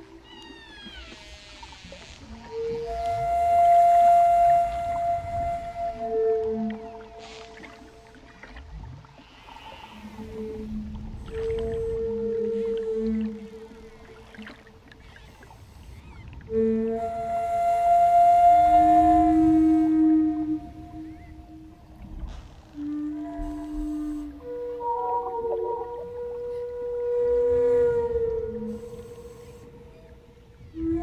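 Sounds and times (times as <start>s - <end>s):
wooden flute playing held notes: 0.0s - 8.3s, 9.9s - 31.0s
whale song: 0.0s - 31.0s.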